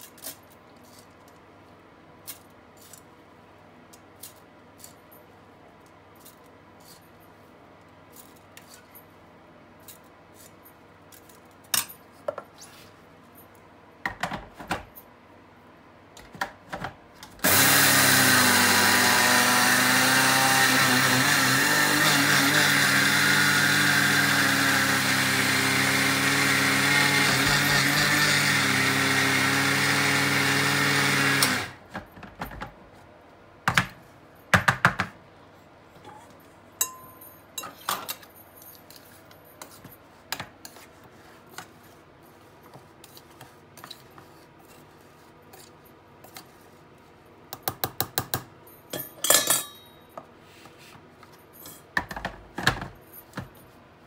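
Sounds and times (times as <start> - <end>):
electric grinder running: 17.4 - 31.8.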